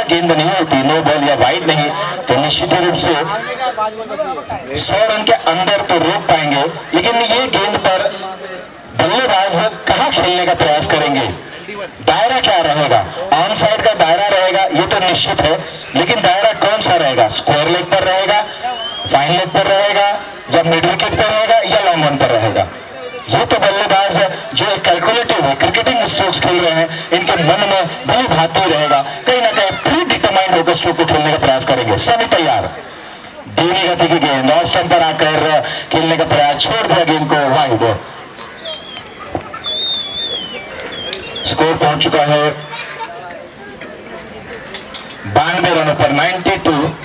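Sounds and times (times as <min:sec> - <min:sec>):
man commentating: 0:00.0 - 0:38.9, 0:40.3 - 0:43.0, 0:45.2 - 0:47.0.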